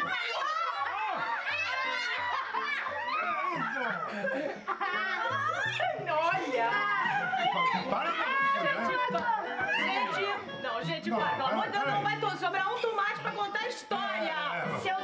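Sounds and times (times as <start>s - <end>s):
background music: 0.0s - 15.0s
children laughing and shouting: 0.0s - 15.0s.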